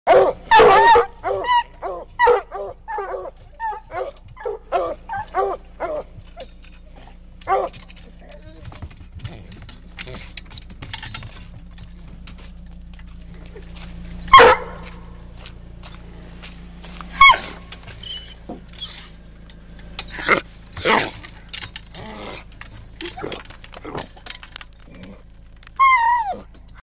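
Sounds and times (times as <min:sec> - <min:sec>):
dogs barking: 0:00.1 - 0:25.2, 0:25.8 - 0:26.8.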